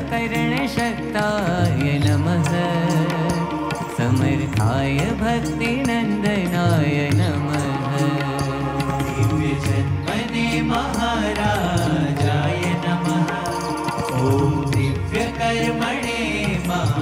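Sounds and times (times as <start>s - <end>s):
devotional music melody: 0.0s - 17.0s
percussion beat: 0.0s - 17.0s.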